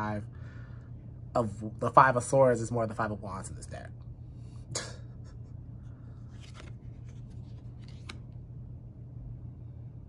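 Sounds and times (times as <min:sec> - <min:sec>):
low hum: 0:00.0 - 0:10.0
cards rubbing and rustling: 0:06.2 - 0:08.4.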